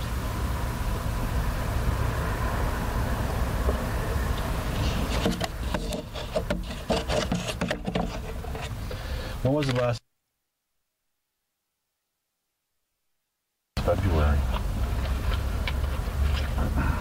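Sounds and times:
recorder handling noise: 9.6s - 10.0s
low rumble inside car: 13.8s - 17.0s.

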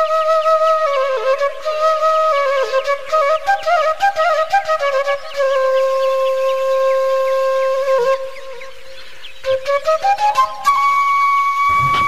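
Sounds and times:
flute melody: 0.0s - 12.0s.

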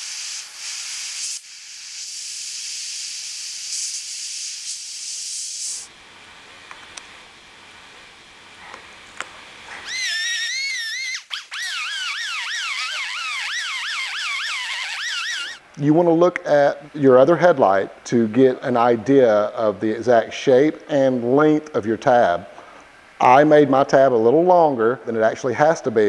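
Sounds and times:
air hissing: 0.0s - 5.9s, 9.7s - 15.6s
rotary grinder whining: 9.8s - 15.6s.

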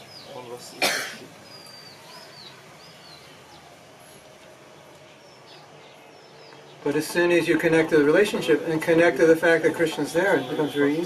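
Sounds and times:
person coughing: 0.8s - 1.3s
faint high bird chirps: 1.4s - 4.2s.

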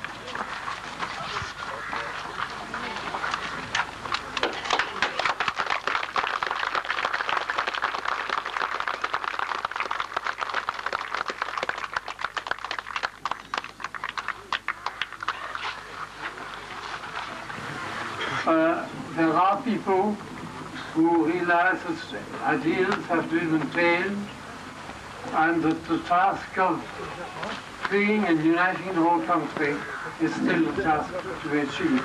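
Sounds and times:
crowd applauding: 0.0s - 18.2s.

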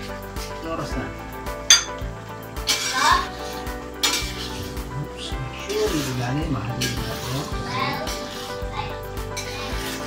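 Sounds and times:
metal utensil scraping a wok: 2.6s - 4.8s, 5.6s - 10.0s.

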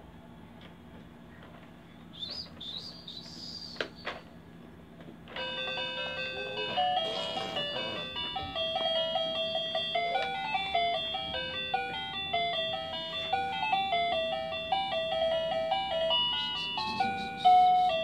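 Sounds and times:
electronic toy melody: 5.3s - 18.0s.

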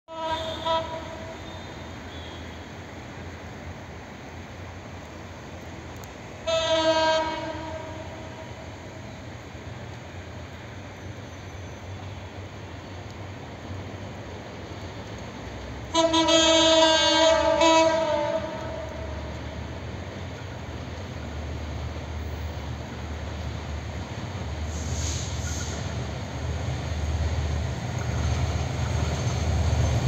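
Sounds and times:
locomotive horn blast: 0.1s - 2.6s, 6.4s - 8.6s, 15.9s - 19.1s
train rumbling: 0.1s - 30.0s.

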